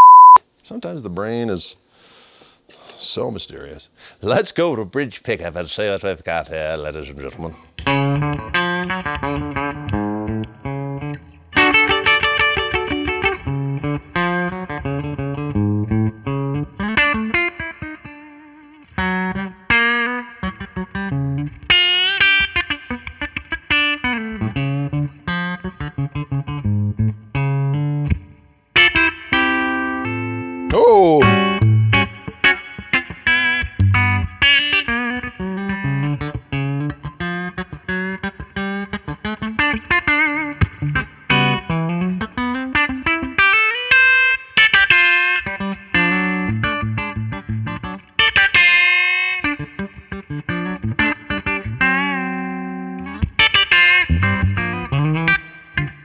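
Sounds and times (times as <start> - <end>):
electric guitar playing lines and chords: 7.8 - 56.0.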